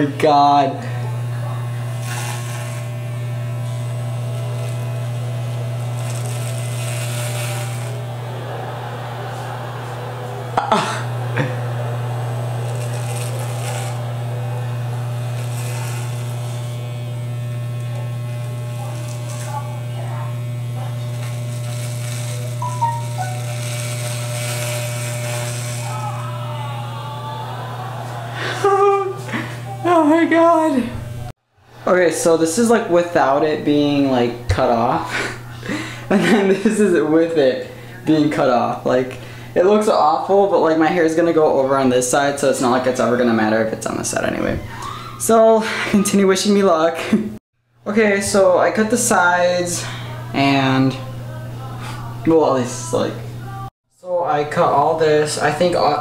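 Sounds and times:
electric hair clippers buzzing: 0.0 - 47.3, 48.2 - 53.7
clipper blades rasping in hair: 1.1 - 8.1, 12.4 - 26.1.

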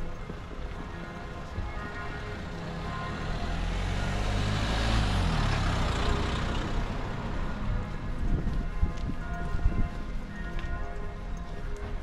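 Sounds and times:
vehicle driving past: 2.3 - 7.7.

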